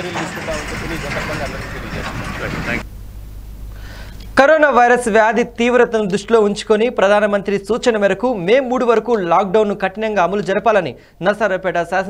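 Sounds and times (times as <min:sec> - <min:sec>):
man talking: 0:00.0 - 0:02.8, 0:04.4 - 0:12.0
road traffic rumble: 0:00.0 - 0:04.4.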